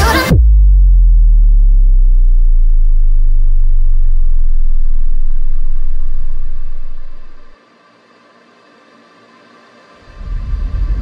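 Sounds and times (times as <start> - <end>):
deep sustained bass note: 0.3 - 7.6.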